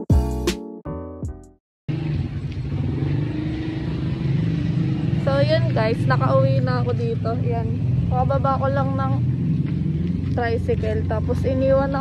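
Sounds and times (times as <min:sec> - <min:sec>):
motorcycle engine humming: 0:01.9 - 0:12.0
woman talking: 0:05.2 - 0:09.3, 0:10.2 - 0:12.0.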